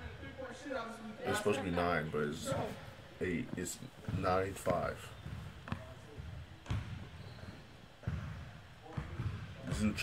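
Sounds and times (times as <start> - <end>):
basketball bouncing on court floor: 3.5 - 10.0.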